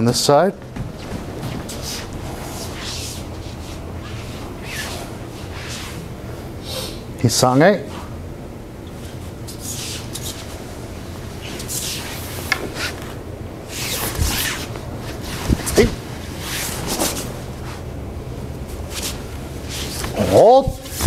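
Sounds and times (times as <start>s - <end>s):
bare feet shuffling on mat: 0.0s - 6.1s
uniforms rustling: 0.0s - 6.1s, 8.9s - 21.0s
low room hum: 0.0s - 21.0s
soft swishes: 0.8s - 6.2s, 9.0s - 21.0s.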